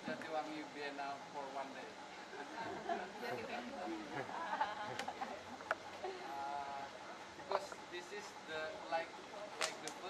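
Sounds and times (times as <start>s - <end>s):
group talking and laughing: 1.8s - 10.0s.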